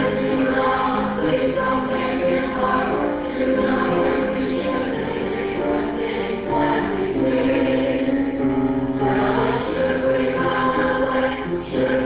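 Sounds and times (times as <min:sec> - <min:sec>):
small choir singing: 0:00.0 - 0:12.0.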